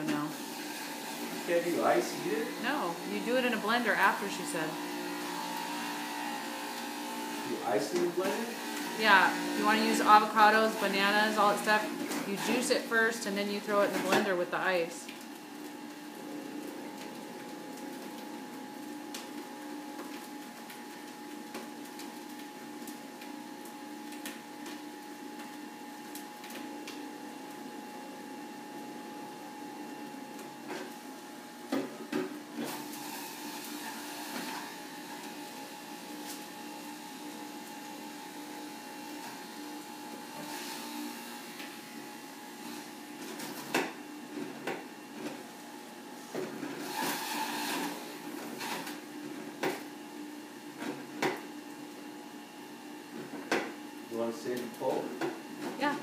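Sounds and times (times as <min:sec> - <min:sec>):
electric juicer motor humming: 0:00.0 - 0:56.0.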